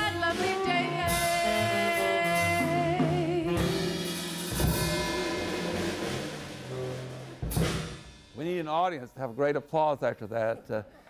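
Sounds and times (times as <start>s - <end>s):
small jazz band playing: 0.0s - 8.6s.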